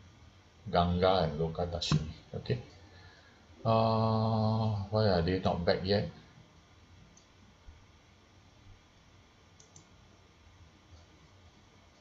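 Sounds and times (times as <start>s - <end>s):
faint short clicks: 9.6s - 9.9s.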